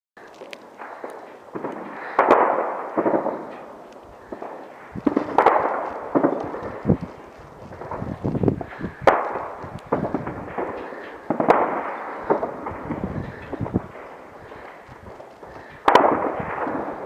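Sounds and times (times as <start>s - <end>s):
distant gunfire cracks: 0.3s - 17.0s
explosions with long echo: 0.5s - 17.0s.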